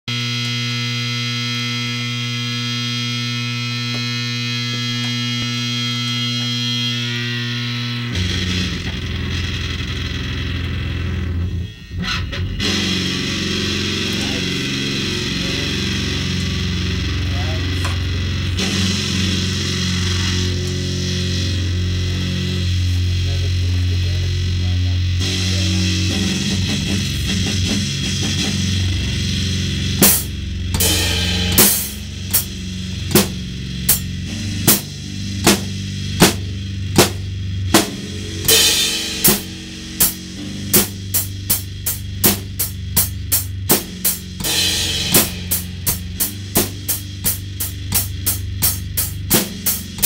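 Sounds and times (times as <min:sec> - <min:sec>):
distorted electric guitar: 0:00.0 - 0:50.0.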